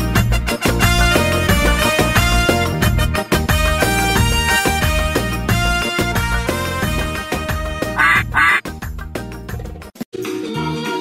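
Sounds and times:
upbeat children's song music: 0:00.0 - 0:11.0
duck quacks: 0:07.9 - 0:08.6.

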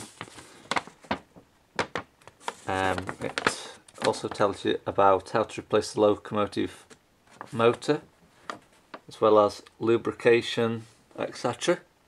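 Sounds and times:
paper rustling: 0:00.0 - 0:01.3, 0:02.2 - 0:04.6, 0:07.3 - 0:08.9.

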